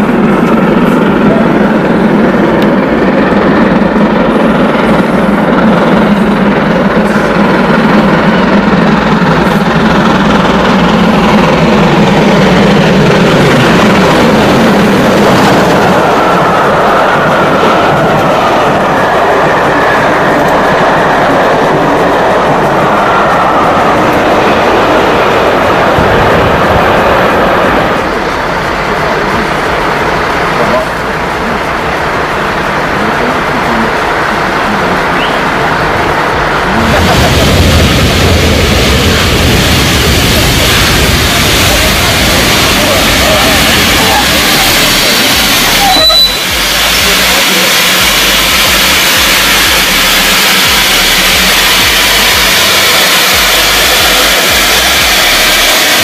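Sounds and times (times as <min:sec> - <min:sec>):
onlookers' voices: 0:00.0 - 0:56.0
steam locomotive passing: 0:00.0 - 0:56.0
train coaches rolling by: 0:00.0 - 0:56.0.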